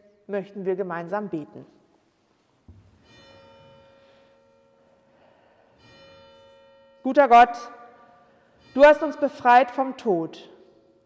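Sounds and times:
faint church bell ringing: 3.0s - 11.0s.

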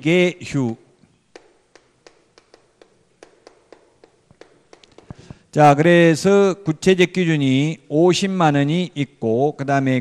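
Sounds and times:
chalk clicking on chalkboard: 0.6s - 5.4s.

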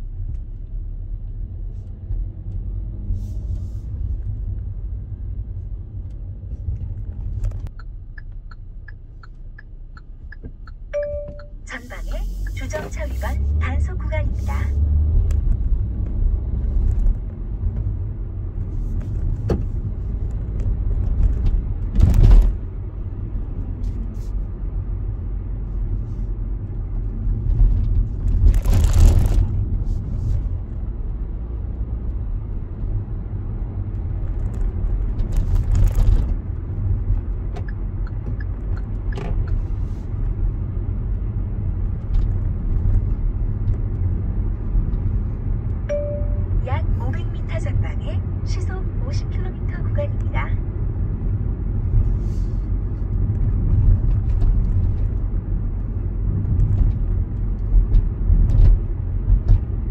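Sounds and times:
car road noise rumble: 0.0s - 59.9s.

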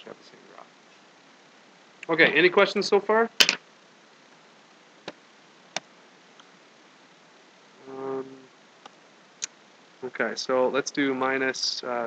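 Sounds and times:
short level-pitched hum: 7.8s - 8.5s.

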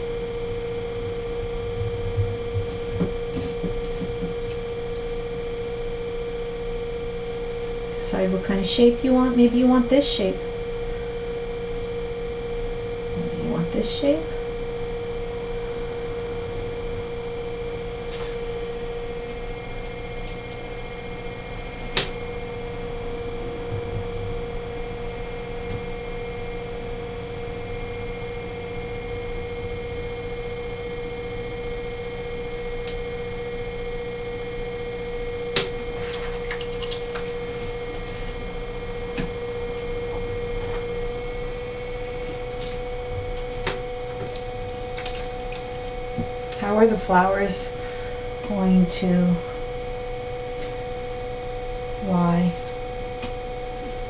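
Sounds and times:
potter's wheel humming: 0.0s - 54.0s.

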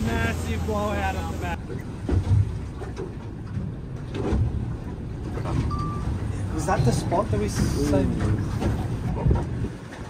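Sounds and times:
water washing around hull: 0.0s - 10.0s
wind buffeting microphone: 1.7s - 10.0s.

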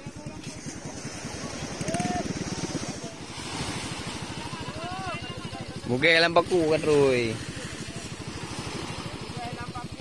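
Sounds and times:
small engine running: 0.0s - 10.0s
surf washing onto beach: 0.0s - 10.0s.

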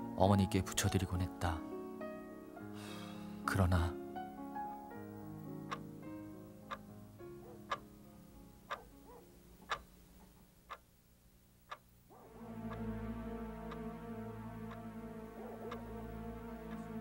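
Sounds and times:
quiet background music: 0.0s - 17.0s
alarm clock ticking: 5.6s - 5.8s, 7.4s - 7.9s, 8.7s - 8.9s, 9.6s - 9.9s, 12.4s - 17.0s.

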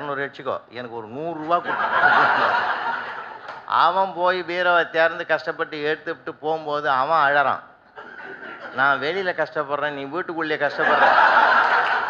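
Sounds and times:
man speaking into a microphone: 0.0s - 2.7s, 3.6s - 7.7s, 8.7s - 11.2s
audience laughter: 1.5s - 3.7s, 8.0s - 9.0s, 10.7s - 12.0s.

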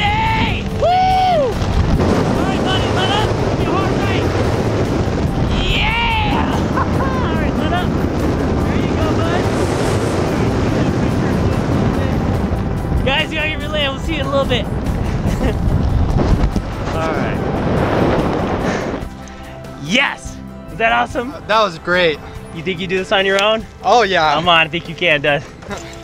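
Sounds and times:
person yelling: 0.0s - 1.6s, 5.5s - 7.6s
wind rushing over microphone: 0.0s - 19.8s.

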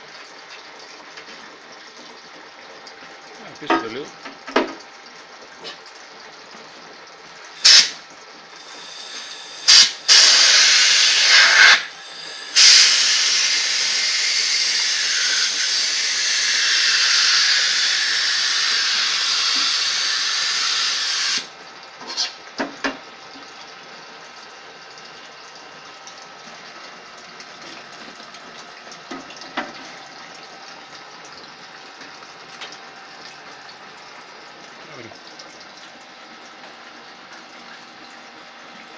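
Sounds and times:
compressed air blow gun hissing: 7.6s - 8.0s, 12.5s - 14.0s.

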